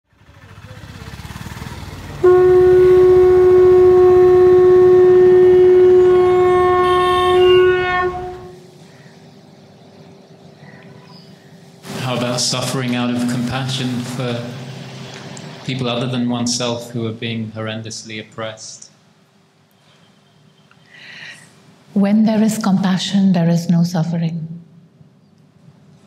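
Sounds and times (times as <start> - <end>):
loud held horn-like note: 2.2 - 8.7.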